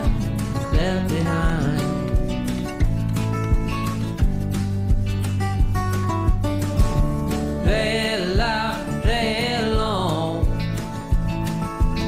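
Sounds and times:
person singing: 0.0 - 2.4, 7.6 - 10.7
steady drum beat: 0.0 - 12.0.

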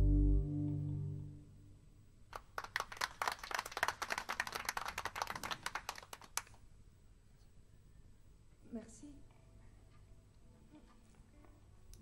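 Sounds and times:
small audience applauding: 2.3 - 6.6.

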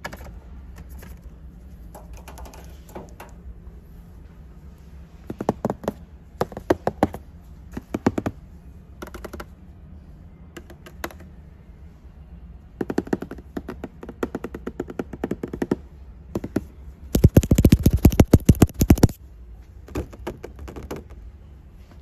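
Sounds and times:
fingertips tapping on packaging: 17.2 - 19.2.

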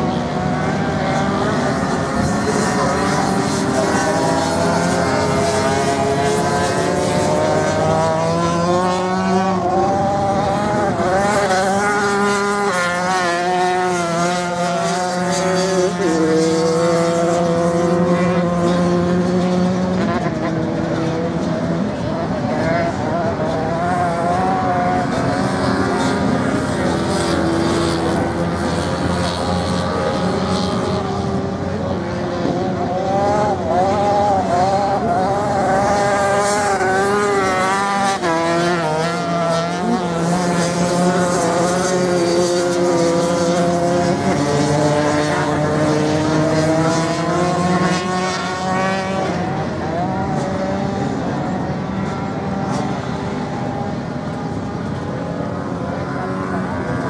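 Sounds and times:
motocross bikes revving: 0.0 - 57.0.

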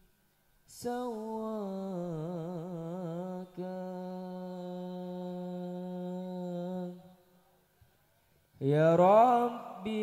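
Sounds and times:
man singing long note: 0.7 - 7.2.

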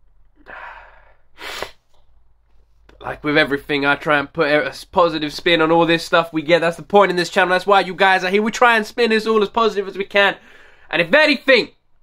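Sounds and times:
man sniffing: 0.4 - 3.0.

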